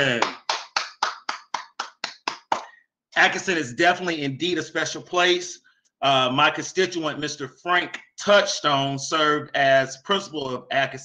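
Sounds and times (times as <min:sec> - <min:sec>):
person clapping hands: 0:00.0 - 0:02.7.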